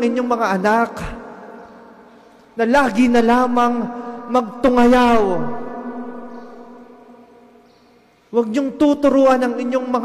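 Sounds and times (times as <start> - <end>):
man's amplified voice ringing: 0.0 - 2.0, 2.6 - 7.5, 8.3 - 10.0.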